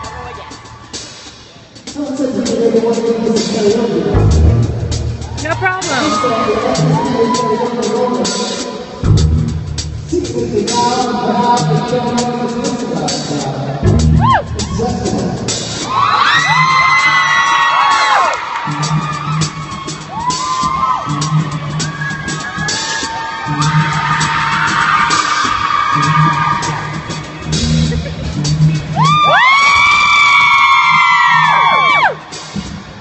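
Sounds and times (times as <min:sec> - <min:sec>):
audience whooping and yelling: 0:00.0 - 0:01.2, 0:05.1 - 0:08.6, 0:14.1 - 0:28.0, 0:28.8 - 0:32.5
live rock band playing: 0:02.9 - 0:30.4.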